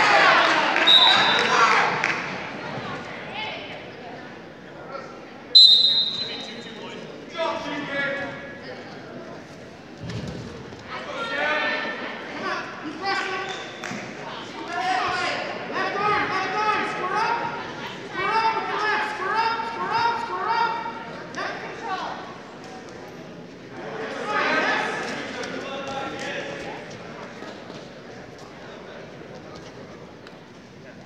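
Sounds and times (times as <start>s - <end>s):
people shouting in a gym hall: 0.0s - 2.1s, 10.9s - 13.5s, 14.2s - 22.3s
voices calling out in echoing hall: 0.0s - 31.0s.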